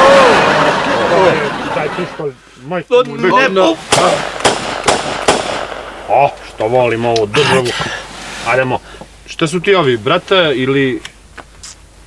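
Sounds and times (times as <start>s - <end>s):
handgun shots: 3.9s - 5.8s.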